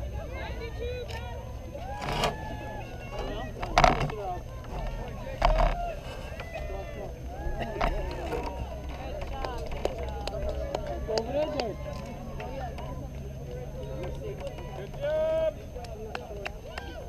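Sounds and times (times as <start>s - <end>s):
people shouting: 0.0s - 8.7s
distant crowd chatter: 0.0s - 17.0s.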